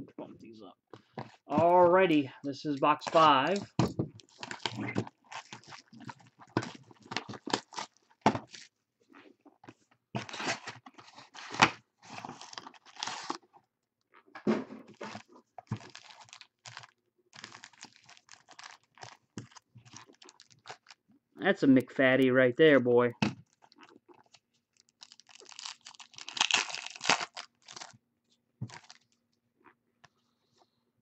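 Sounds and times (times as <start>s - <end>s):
packaging tearing and crinkling: 3.0s - 8.7s, 10.2s - 13.5s, 14.9s - 21.0s, 23.4s - 28.0s, 28.7s - 29.2s.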